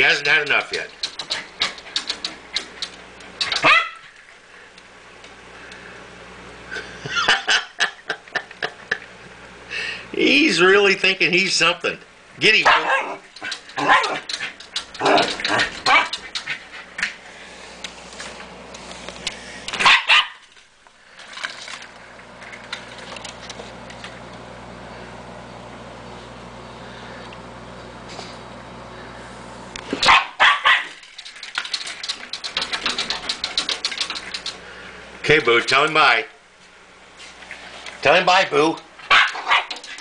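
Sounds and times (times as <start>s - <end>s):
steady low hum: 0.0s - 40.0s
dog barking: 3.6s - 4.1s, 12.6s - 13.2s, 13.8s - 14.3s, 15.0s - 16.2s, 19.8s - 20.4s, 30.0s - 31.0s, 39.1s - 39.8s.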